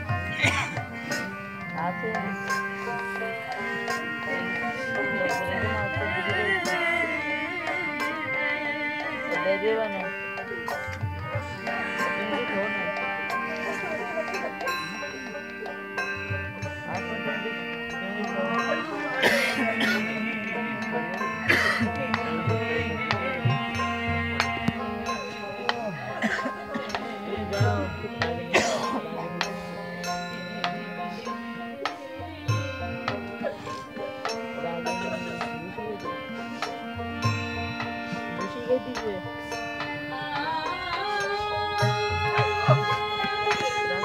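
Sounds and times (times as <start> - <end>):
devotional music: 0.0 - 44.0
held instrumental notes: 0.0 - 44.0.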